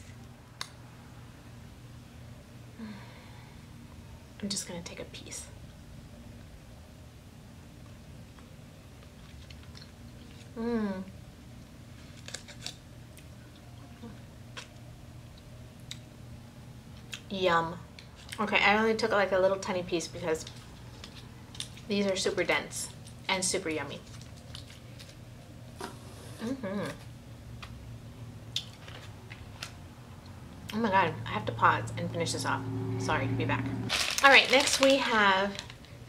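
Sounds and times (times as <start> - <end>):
low steady room hum: 0.0 - 36.0.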